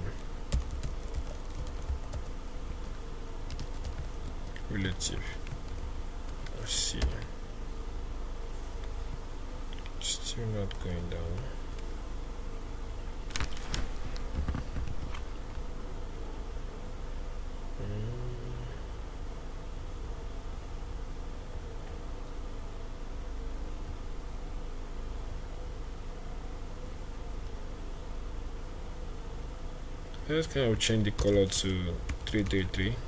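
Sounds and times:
low background hum: 0.0s - 33.0s.

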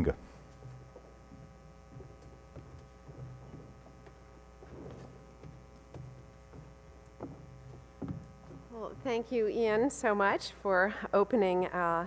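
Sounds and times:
electrical mains hum: 0.0s - 12.0s
soft knocks on lectern: 4.8s - 8.6s.

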